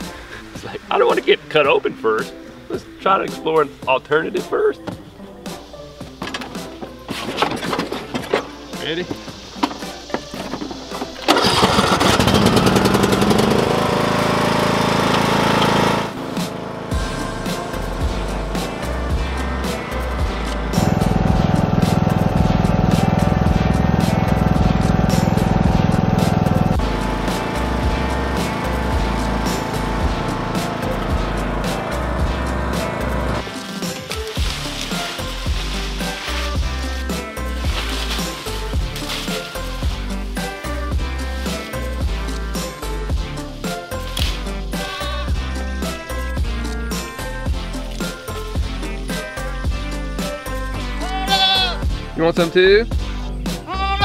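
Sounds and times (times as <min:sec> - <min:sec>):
background music with bass line: 0:00.0 - 0:54.0
lawn mower engine: 0:09.6 - 0:42.8.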